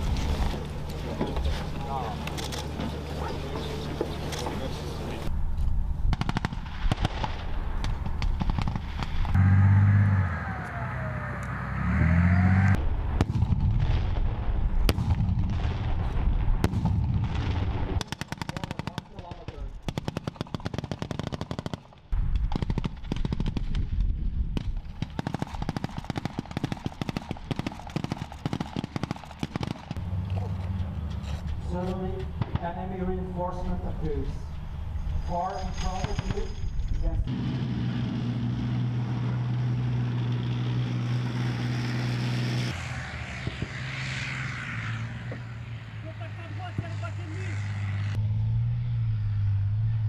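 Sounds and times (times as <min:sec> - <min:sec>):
armoured vehicle engines running: 0:00.0 - 0:06.3, 0:07.2 - 0:13.7, 0:21.8 - 0:50.0
engine swell with whine: 0:09.3 - 0:13.1, 0:37.2 - 0:50.0
automatic gunfire: 0:25.0 - 0:29.9.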